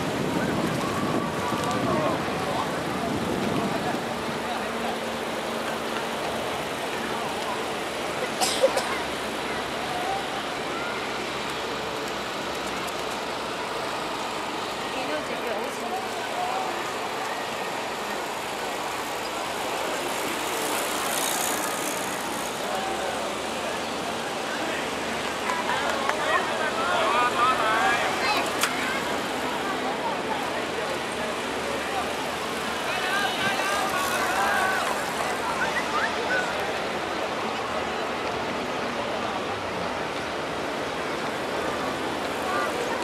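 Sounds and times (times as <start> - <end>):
faint indistinct voices: 0.0 - 43.0
steady background noise: 0.0 - 43.0.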